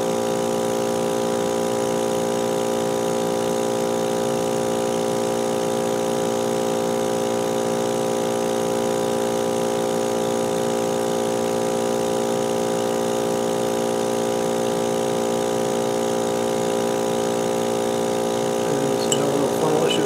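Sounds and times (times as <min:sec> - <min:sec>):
vacuum pump humming: 0:14.0 - 0:20.0.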